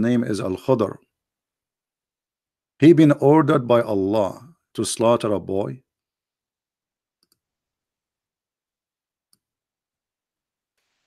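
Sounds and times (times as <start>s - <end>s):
faint computer mouse clicks: 7.2s - 7.4s.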